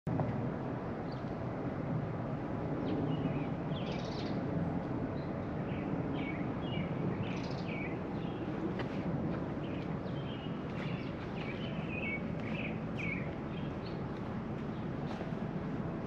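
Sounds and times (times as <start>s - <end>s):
small birds chirping: 2.8s - 4.5s, 5.2s - 8.5s, 9.6s - 15.3s.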